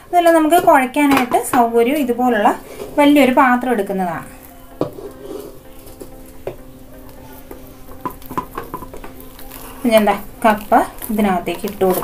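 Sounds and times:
utensil knocking a metal bowl: 0.3s - 1.7s, 8.0s - 9.2s.

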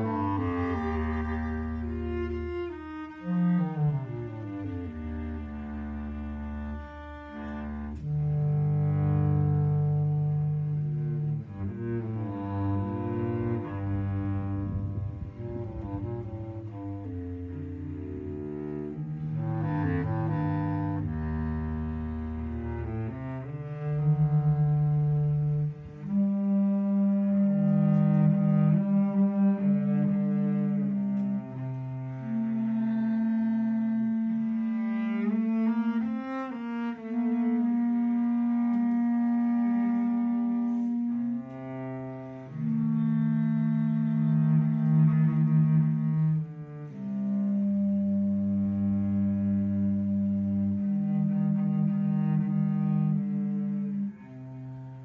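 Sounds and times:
bass clarinet: 0.0s - 55.0s
cello: 0.0s - 55.0s.

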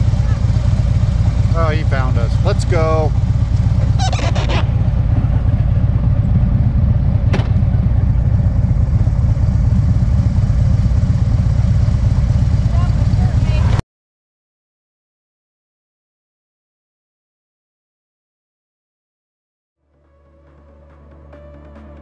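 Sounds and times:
motorcycle engine idling: 0.0s - 13.8s.

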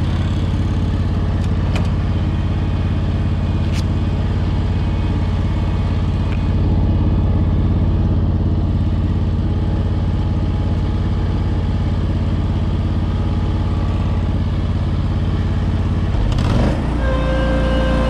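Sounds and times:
tractor engine running: 0.0s - 18.0s.

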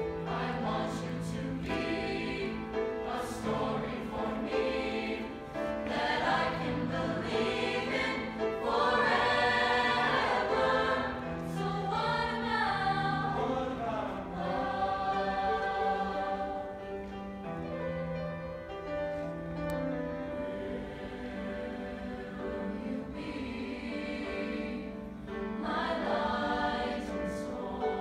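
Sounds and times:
mixed-voice choir singing: 0.0s - 17.5s, 19.7s - 28.0s.

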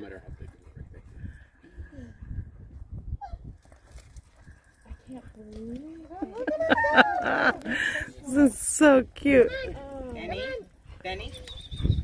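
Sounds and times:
wind buffeting microphone: 0.0s - 12.0s
laughter: 6.1s - 8.1s.

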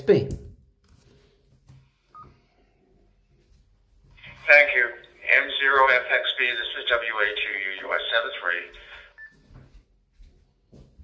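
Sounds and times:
man's voice through radio speaker: 4.2s - 9.2s.

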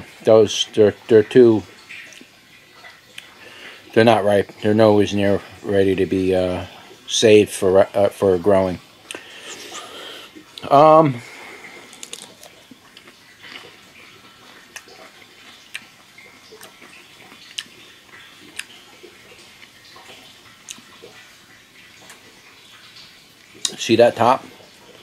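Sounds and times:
person chewing crunchy pepper: 11.8s - 13.8s, 16.5s - 18.7s.

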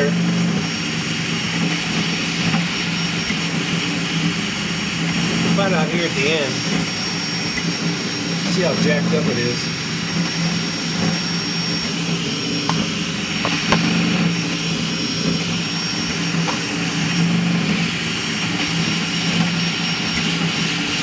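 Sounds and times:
cooling fans whirring: 0.0s - 21.0s
printer motors humming: 0.0s - 21.0s
thin high whine: 0.0s - 21.0s.

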